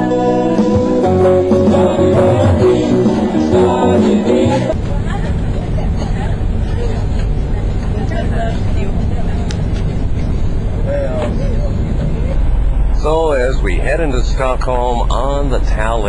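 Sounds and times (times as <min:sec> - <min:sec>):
ship engines rumbling: 0:00.0 - 0:16.0
faint passenger voices: 0:04.5 - 0:16.0.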